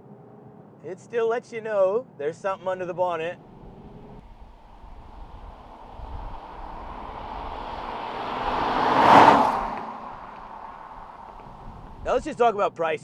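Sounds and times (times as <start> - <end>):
car driving past at speed: 3.4 - 12.1.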